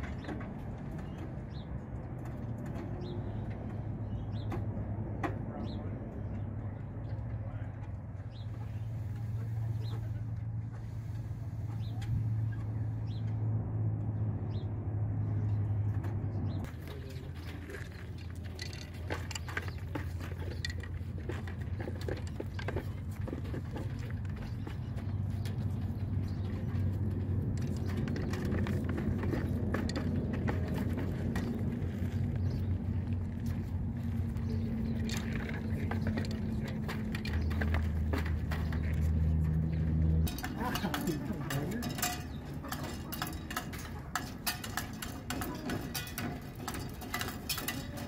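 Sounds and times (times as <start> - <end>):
steady low rumble: 0.0 - 48.0
bird chirping: 2.9 - 4.7.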